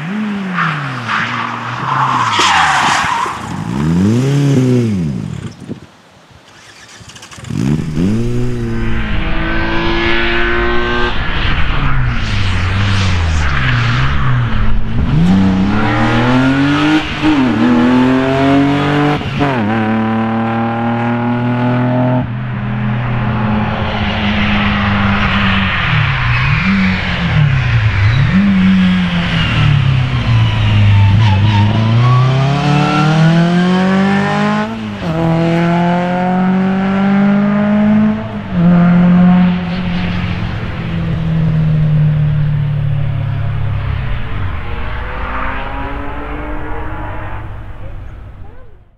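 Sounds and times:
race car engines revving: 6.5 - 48.9
tyre squeal: 25.8 - 32.8.

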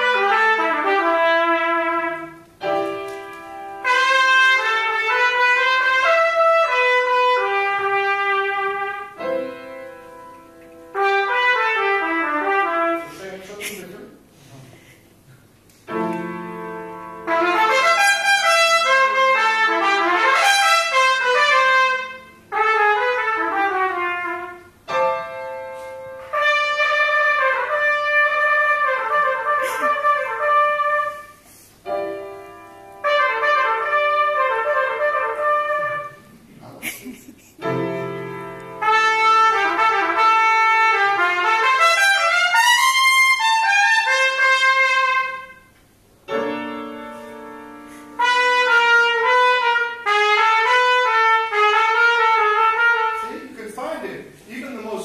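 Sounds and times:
held piano notes: 15.8 - 36.7, 37.6 - 41.0, 42.3 - 51.2
trumpet fast runs: 17.3 - 24.6, 38.8 - 45.6.

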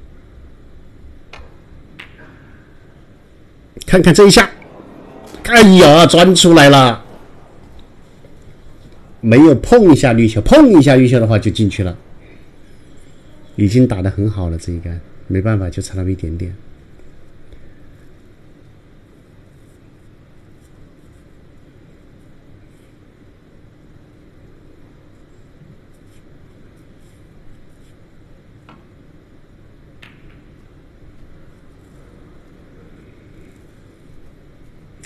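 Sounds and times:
low background hum: 0.0 - 35.0
snooker balls clicking: 1.2 - 2.5, 29.9 - 31.4.

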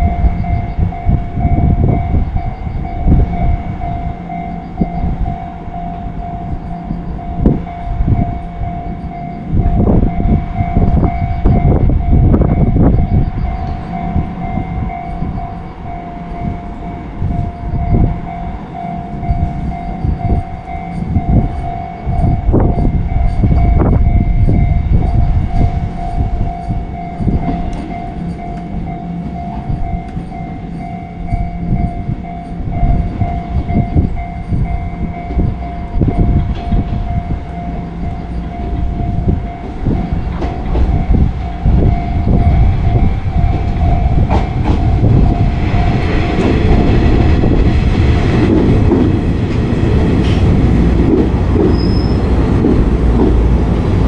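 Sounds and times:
steady ringing tone: 0.0 - 52.4
electric train running: 0.0 - 54.0
wind rumble on microphone: 0.0 - 54.0
train brakes squealing: 51.6 - 52.5.

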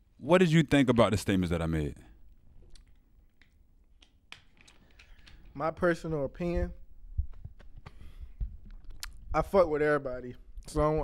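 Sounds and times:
microphone handling thumps: 6.5 - 8.8.

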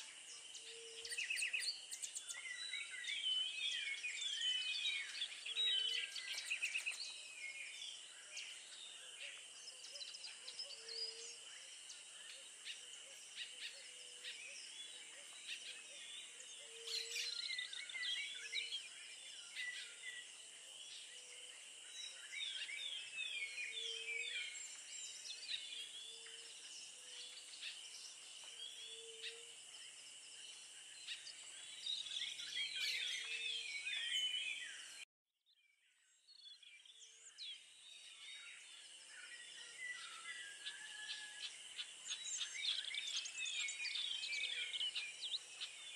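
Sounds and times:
small birds chirping: 0.0 - 45.9.

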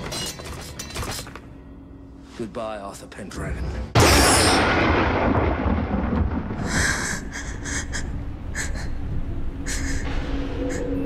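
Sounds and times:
deep rumble like thunder: 4.6 - 7.8.

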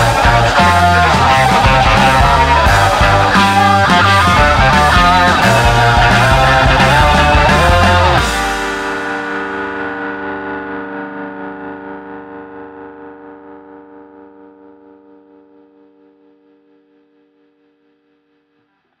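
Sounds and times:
rock music: 0.0 - 17.1
distorted electric guitar chord: 0.0 - 18.6.

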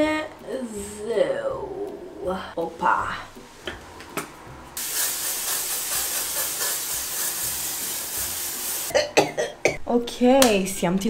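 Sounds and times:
aerosol spray can hissing: 4.8 - 8.9.

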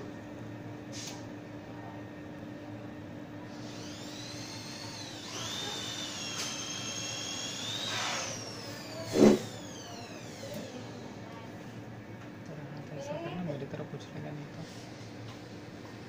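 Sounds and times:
small electric motor whining: 3.5 - 11.3.

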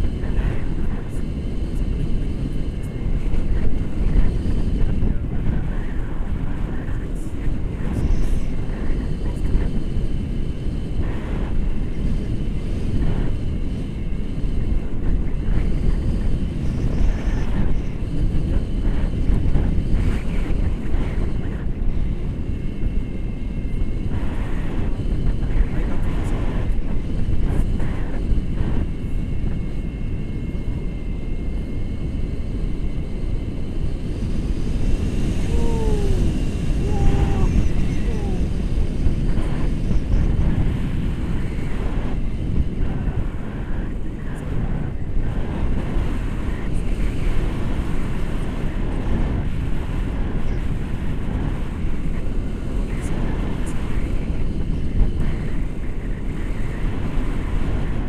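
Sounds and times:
wind rushing over microphone: 0.0 - 58.0.

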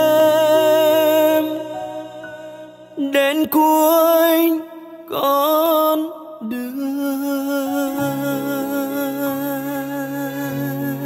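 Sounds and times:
person singing with vibrato: 0.0 - 11.0.

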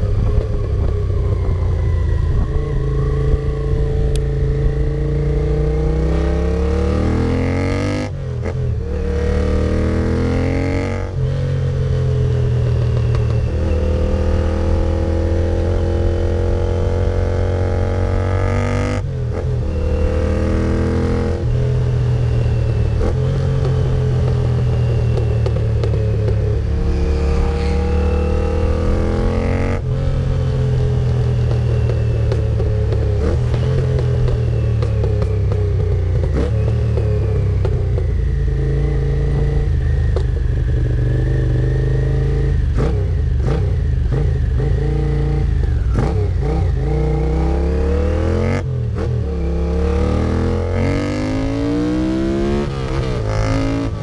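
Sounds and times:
motorcycle engine accelerating: 0.0 - 54.0.

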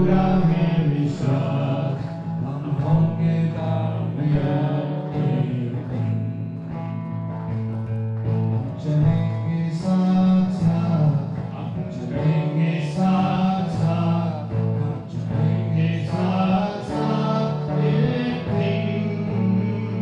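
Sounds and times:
man singing: 0.0 - 6.8, 8.6 - 20.0
strummed acoustic guitar: 0.0 - 20.0.

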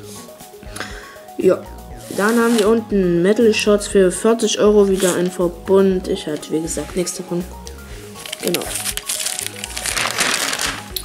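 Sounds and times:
background music: 0.0 - 11.0
paper pages turning: 2.1 - 2.7, 4.9 - 5.4, 8.2 - 11.0.

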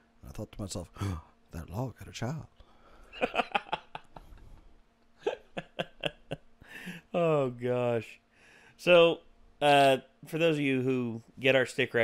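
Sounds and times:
man laughing hard: 3.2 - 4.4, 5.2 - 7.1.

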